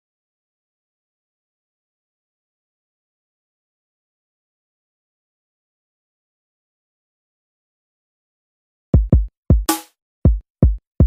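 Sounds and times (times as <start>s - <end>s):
deep drum thump: 9.0s - 9.7s.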